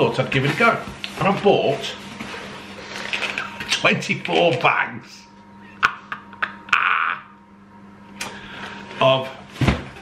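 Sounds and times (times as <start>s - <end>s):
faint steady hum: 0.0s - 10.0s
breathy laugh: 5.6s - 7.3s.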